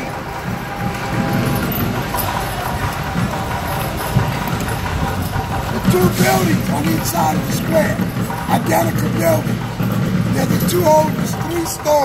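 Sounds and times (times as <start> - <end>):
carriage wheels rolling: 0.0 - 12.0
horse hooves clopping on pavement: 0.0 - 12.0.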